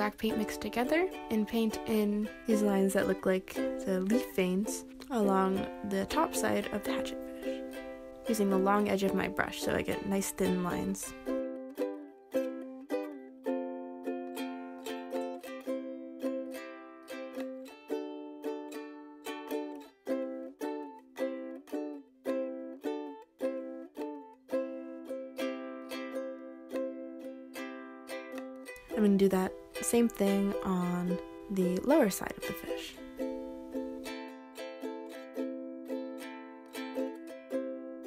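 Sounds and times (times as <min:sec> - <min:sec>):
ukulele music: 0:00.0 - 0:38.0.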